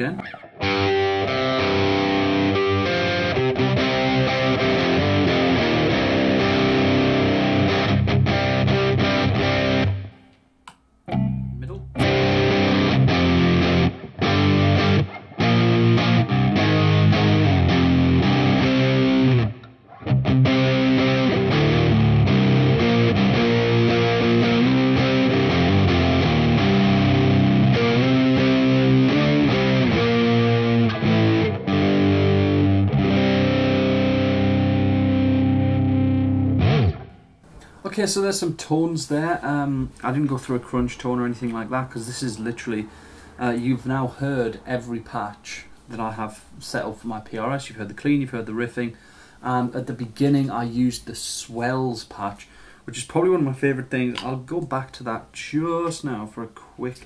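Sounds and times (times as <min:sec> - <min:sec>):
distorted electric guitar riffs: 0:00.0 - 0:10.3, 0:11.1 - 0:37.4.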